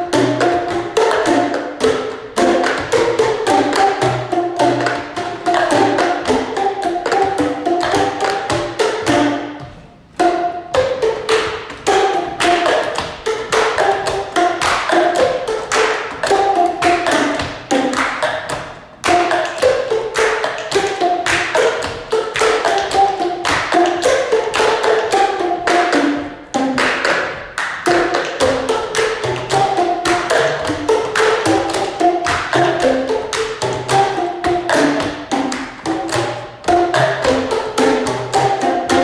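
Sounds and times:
hand claps: 0:00.0 - 0:09.5, 0:10.8 - 0:39.0
boomwhackers playing melody: 0:00.0 - 0:39.0
plastic cups tapping on table: 0:00.1 - 0:39.0.

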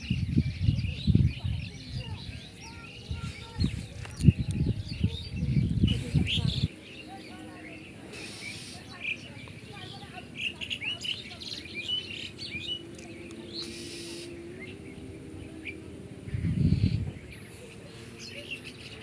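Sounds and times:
small birds chirping: 0:00.0 - 0:19.0
loud low rumble: 0:14.4 - 0:17.5.

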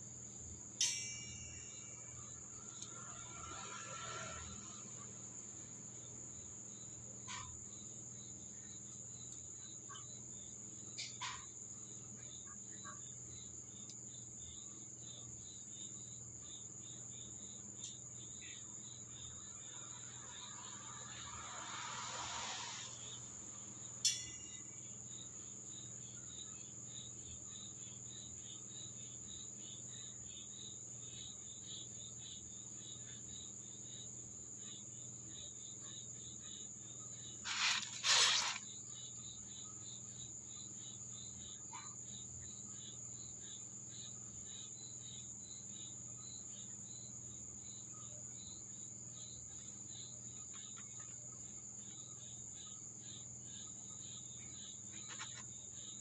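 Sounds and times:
crickets trilling: 0:00.0 - 0:56.0
brushing rustle: 0:37.4 - 0:38.6.

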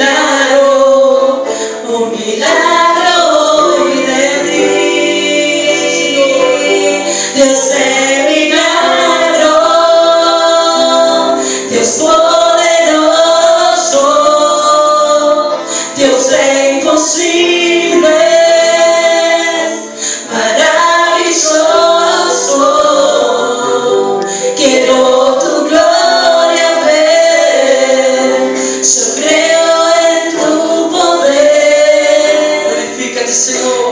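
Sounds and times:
held chords: 0:00.0 - 0:33.9
women singing through a pa: 0:00.0 - 0:33.9.

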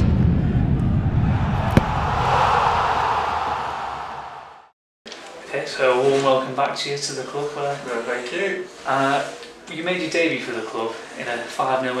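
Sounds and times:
sharp hit: 0:00.0 - 0:04.2
deep rumbling boom: 0:00.0 - 0:04.4
rushing whoosh: 0:00.4 - 0:04.8.

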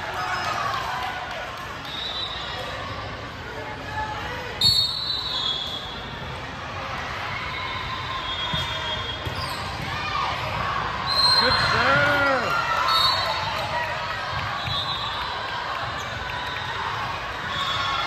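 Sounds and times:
players calling out: 0:11.0 - 0:12.9.

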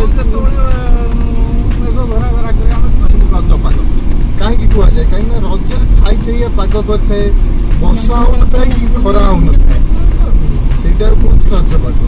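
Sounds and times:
car driving on a highway: 0:00.0 - 0:12.0.

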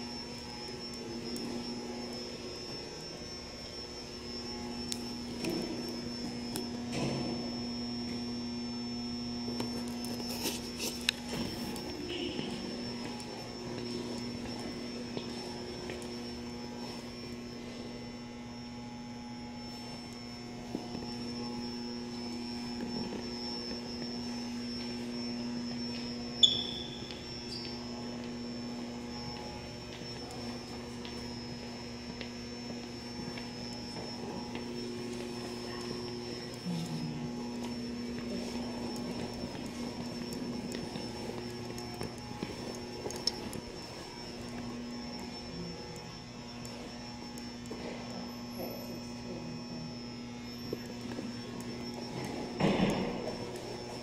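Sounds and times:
low electrical hum: 0:00.0 - 0:54.0
thin high whine: 0:00.0 - 0:54.0.

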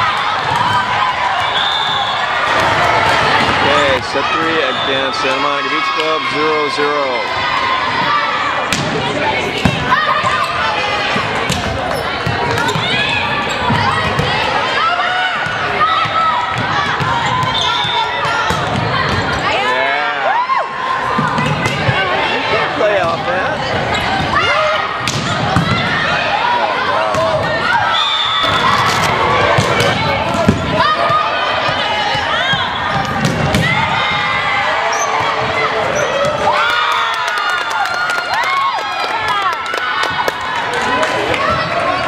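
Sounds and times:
shoes squeaking on wooden floor: 0:28.4 - 0:29.2.

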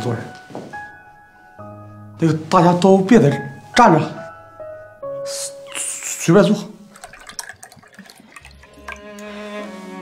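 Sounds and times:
liquor trickling into cup: 0:06.8 - 0:09.5.

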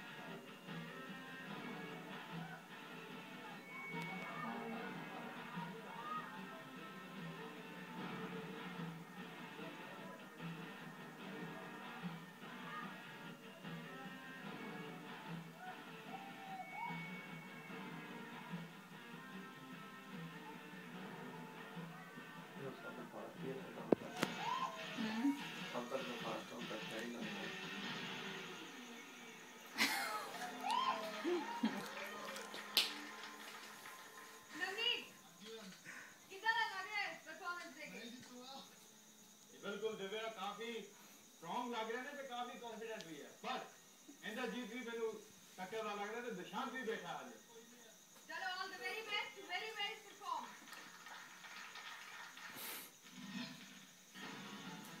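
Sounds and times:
television background music: 0:00.0 - 0:55.0
voices from television: 0:00.0 - 0:55.0
brief hiss: 0:52.4 - 0:55.0.

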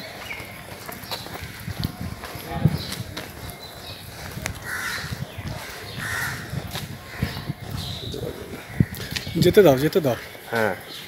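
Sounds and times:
crow cawing: 0:04.6 - 0:05.1, 0:05.9 - 0:06.5.

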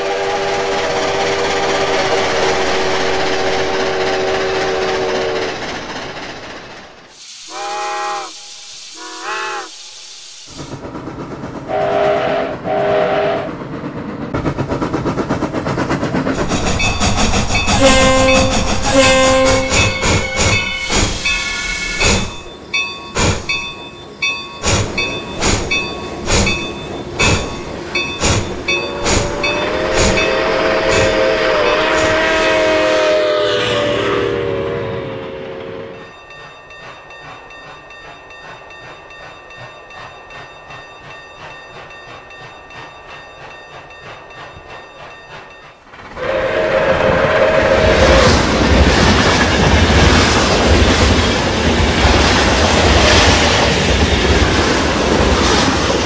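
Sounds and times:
steam locomotive chime whistle: 0:00.0 - 0:05.7, 0:07.4 - 0:10.2, 0:11.7 - 0:13.5, 0:16.6 - 0:38.0, 0:44.5 - 0:48.5
locomotive exhaust beats: 0:10.7 - 0:56.0.

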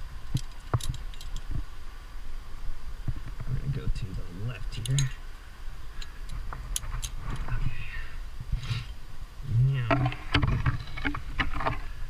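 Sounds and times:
carabiner clicks: 0:04.8 - 0:05.2.

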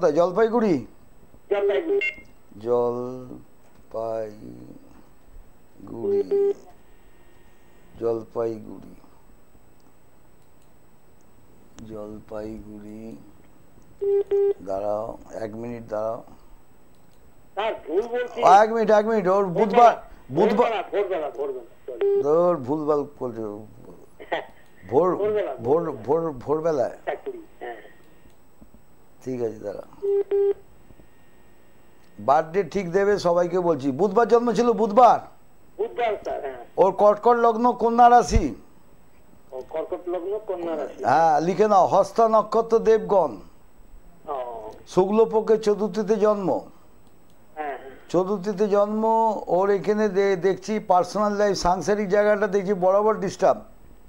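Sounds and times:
faint phone line hiss: 0:01.5 - 0:05.0, 0:05.8 - 0:09.2, 0:14.0 - 0:16.2, 0:17.6 - 0:28.3, 0:29.2 - 0:38.4
short telephone beeps: 0:01.6 - 0:02.3, 0:30.0 - 0:30.6.

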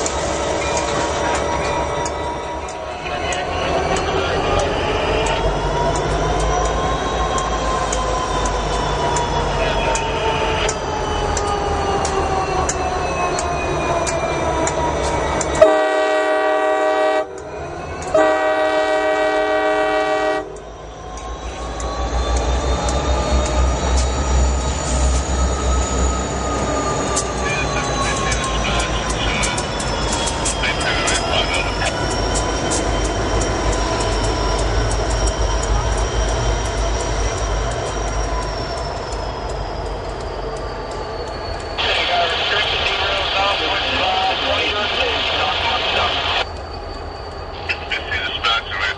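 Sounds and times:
diesel locomotive engines rumbling: 0:00.0 - 0:48.9
locomotive horn blasts: 0:15.6 - 0:17.4, 0:18.2 - 0:20.6
wheel squeal: 0:20.7 - 0:43.2, 0:45.0 - 0:48.0.

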